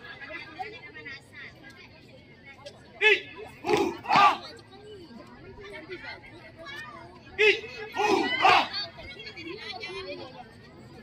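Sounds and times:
group shouting drill calls: 3.0 - 4.5, 7.4 - 8.8.

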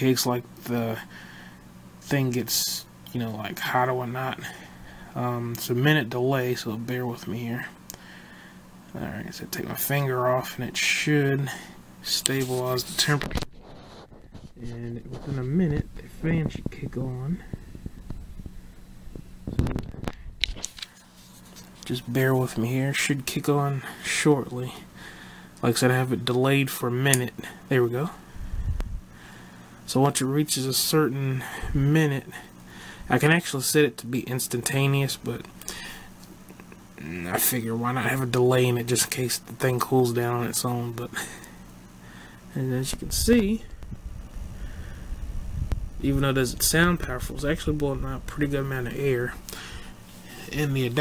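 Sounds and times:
computer fan air rush: 0.0 - 51.0
low steady hum: 0.0 - 51.0.

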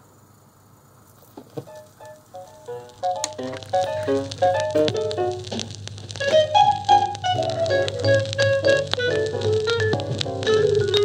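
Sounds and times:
vinyl surface hiss and crackle: 0.0 - 11.0
jazz music: 1.6 - 11.0
sharp clicks: 1.7 - 11.0.

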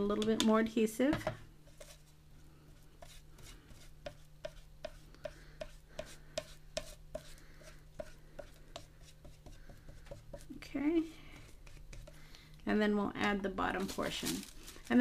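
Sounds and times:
brush strokes rubbing on board: 1.7 - 10.5.

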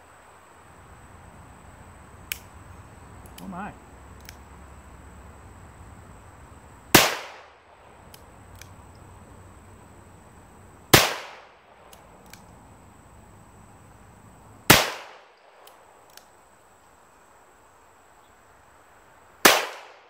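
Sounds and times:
faint clicks: 4.2 - 4.4.

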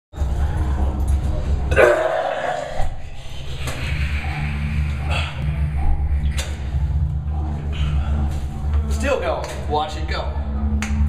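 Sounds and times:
steady low hum: 0.2 - 11.0
man retching: 1.7 - 2.9.

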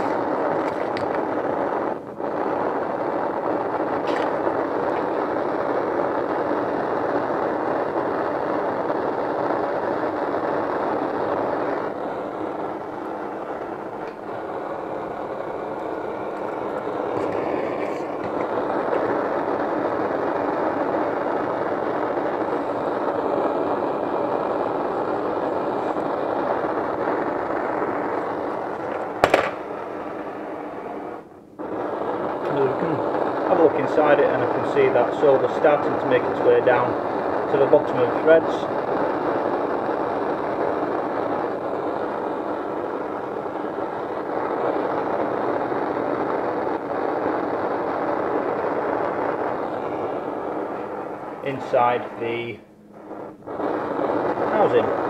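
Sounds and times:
blowtorch flame roaring: 0.0 - 55.0.

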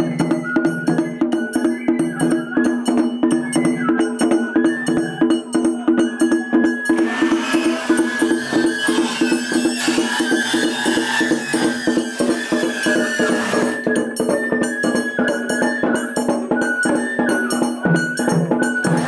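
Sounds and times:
drums and percussion beat: 0.0 - 19.0
high flute melody: 0.0 - 19.0.

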